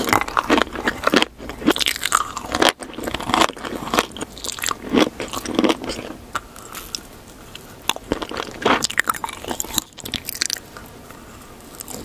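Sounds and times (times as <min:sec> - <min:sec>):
wet mouth sounds: 0:00.0 - 0:10.6
crunchy chewing: 0:00.0 - 0:12.0.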